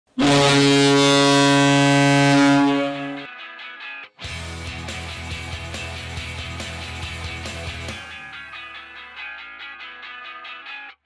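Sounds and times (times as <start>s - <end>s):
loud deep horn blast: 0.2s - 3.3s.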